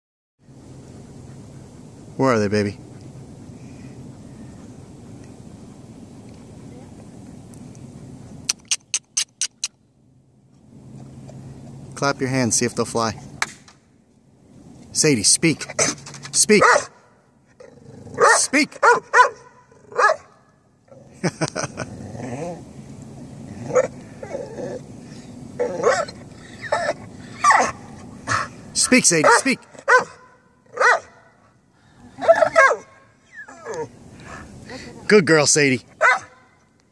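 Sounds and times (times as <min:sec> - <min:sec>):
dog barking: 0:16.6 - 0:17.0, 0:18.2 - 0:20.3, 0:29.2 - 0:31.2, 0:32.2 - 0:33.0, 0:36.0 - 0:36.6
dog yelping: 0:25.6 - 0:27.8, 0:29.2 - 0:31.1, 0:32.2 - 0:34.0, 0:36.0 - 0:36.4.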